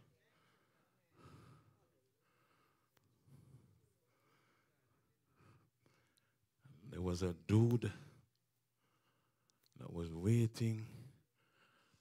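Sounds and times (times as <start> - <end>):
faint breath: 0.0 - 6.8, 10.8 - 12.0.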